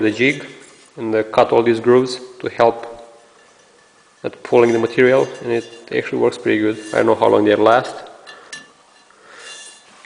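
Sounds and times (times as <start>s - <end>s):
soft rustle: 0.0s - 1.2s, 3.0s - 10.0s.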